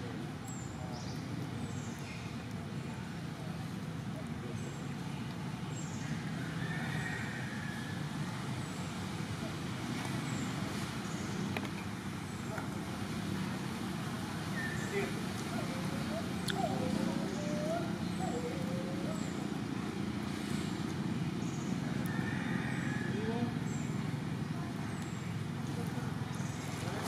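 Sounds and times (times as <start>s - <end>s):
faint distant voices: 0.0s - 27.0s.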